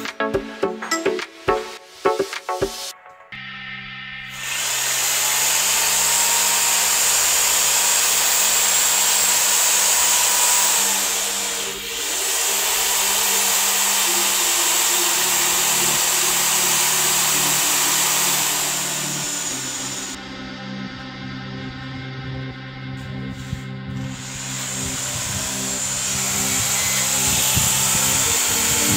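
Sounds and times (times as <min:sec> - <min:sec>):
drill wire brush scouring metal: 0:04.3 - 0:20.2, 0:23.4 - 0:28.9.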